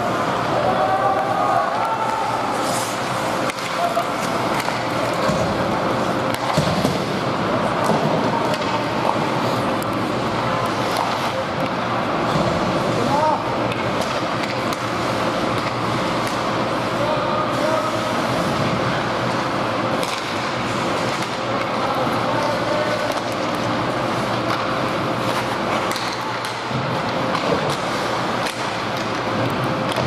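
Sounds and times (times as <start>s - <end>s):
hubbub of indistinct voices: 0.0s - 6.5s
hockey sticks and puck clacking: 1.1s - 16.8s, 19.3s - 30.0s
skates scraping on ice: 2.1s - 11.4s.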